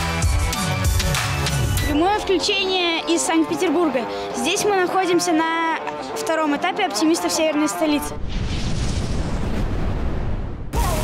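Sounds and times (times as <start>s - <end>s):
music: 0.0s - 8.2s, 10.7s - 11.0s.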